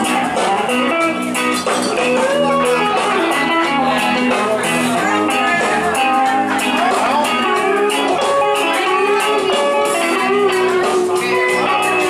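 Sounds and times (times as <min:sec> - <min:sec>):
instrumental backing track with guitar: 0:00.0 - 0:12.0.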